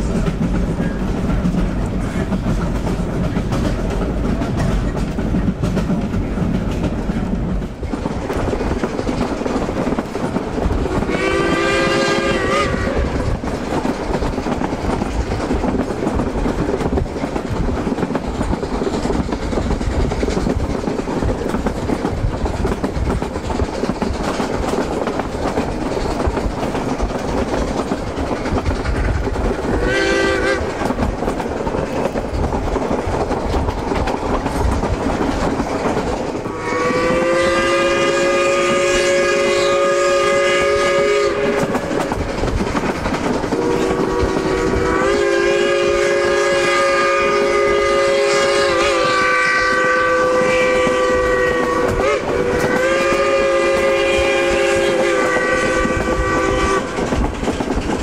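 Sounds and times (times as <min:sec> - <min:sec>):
train wheels clattering over rail joints: 0:00.0 - 0:58.0
steam whistle blasts: 0:11.1 - 0:13.2, 0:29.8 - 0:30.7, 0:36.5 - 0:41.7, 0:43.6 - 0:57.0.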